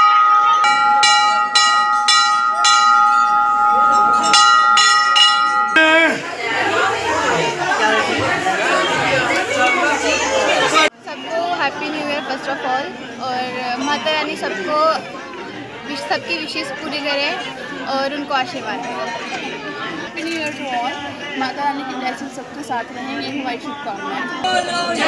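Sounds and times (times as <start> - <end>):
brass temple bell ringing: 0.0 - 6.4
crowd chatter: 0.0 - 25.0.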